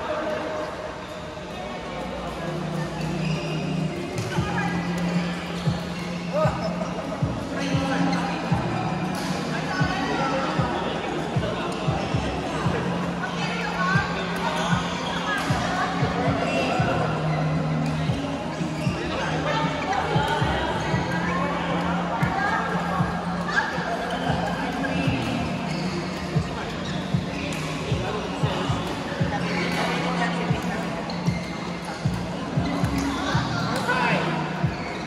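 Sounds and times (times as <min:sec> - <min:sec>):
background chatter: 0:00.0 - 0:35.0
music: 0:00.0 - 0:35.0.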